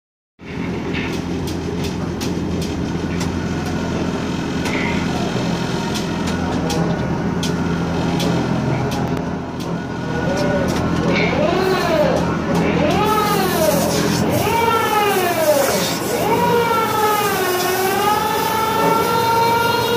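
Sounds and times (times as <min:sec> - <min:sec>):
crane hoist humming: 0:00.4 - 0:19.9.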